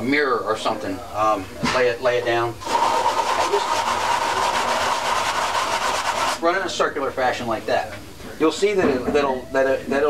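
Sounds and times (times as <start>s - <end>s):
metal part scraping on sandpaper: 2.7s - 6.4s.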